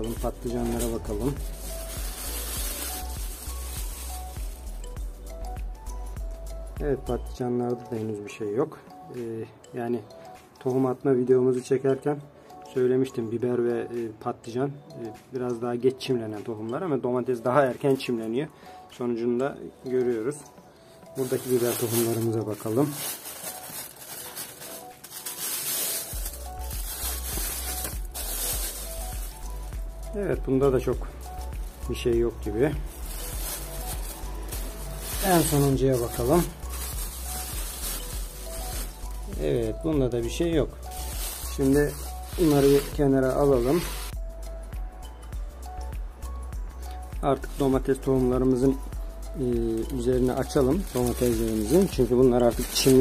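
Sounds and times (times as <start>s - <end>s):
plastic sheeting crinkling: 0.0s - 5.0s, 21.2s - 29.9s, 30.9s - 39.8s, 40.6s - 44.1s, 49.8s - 53.0s
plastic bags rustling: 0.0s - 5.1s, 21.2s - 29.9s, 30.8s - 39.8s, 40.6s - 44.1s, 49.7s - 53.0s
background music: 0.0s - 53.0s.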